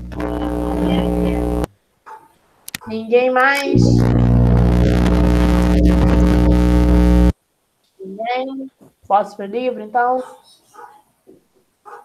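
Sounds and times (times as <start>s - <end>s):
low-pitched buzz: 0.0s - 1.7s, 3.6s - 7.4s.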